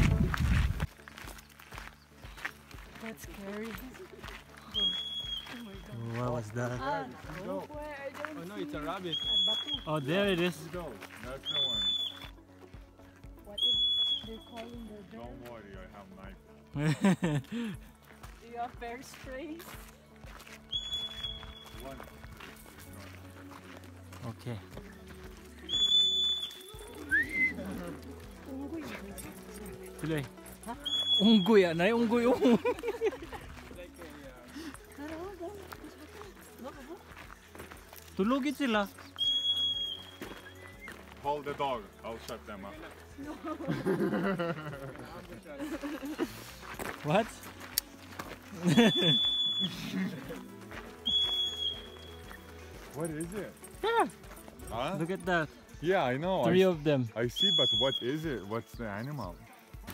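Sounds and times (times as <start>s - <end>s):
marmot alarm whistle: 4.6s - 5.8s, 9.1s - 10.0s, 11.4s - 12.3s, 13.6s - 14.5s, 20.7s - 21.8s, 25.6s - 27.6s, 30.8s - 31.7s, 39.1s - 40.9s, 48.7s - 49.8s, 51.0s - 52.2s, 57.3s - 58.2s.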